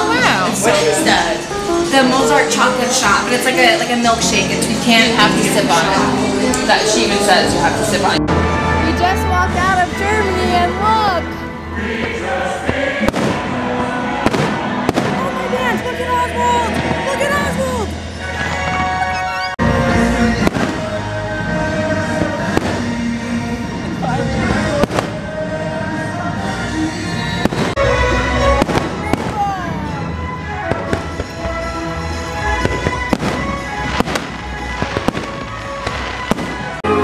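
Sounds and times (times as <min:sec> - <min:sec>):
loud music: 0:00.0 - 0:37.0
fireworks bangs: 0:11.9 - 0:18.9, 0:20.0 - 0:25.8, 0:26.4 - 0:37.0.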